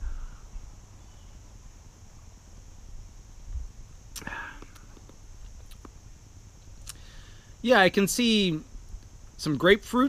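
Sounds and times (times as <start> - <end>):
high-pitched hiss: 0.0 - 10.0.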